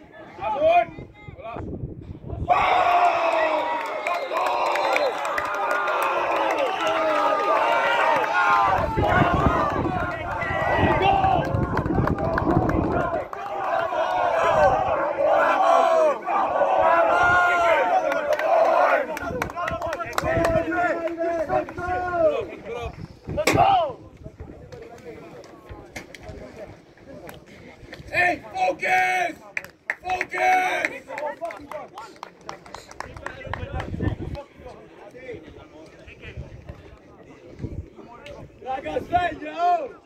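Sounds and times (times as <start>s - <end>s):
group shouting and cheering: 2.3s - 22.6s.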